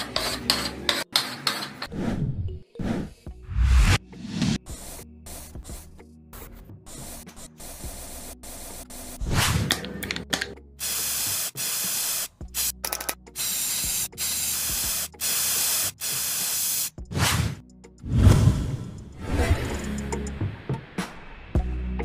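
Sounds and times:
spray can hissing bursts: 0:04.6 - 0:06.0, 0:06.9 - 0:09.2, 0:10.8 - 0:17.0.

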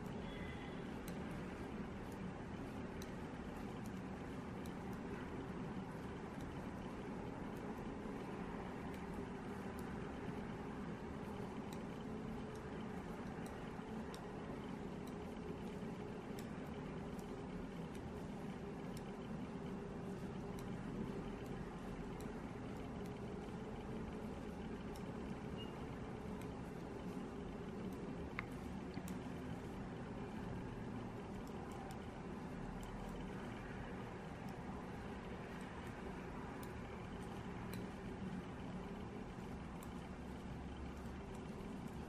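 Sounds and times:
knitting needles clicking: 0:00.0 - 0:42.0
low background hum: 0:00.0 - 0:42.0.

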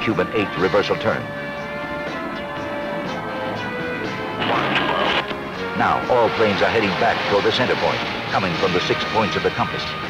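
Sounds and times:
background music with held chords: 0:00.0 - 0:10.0.

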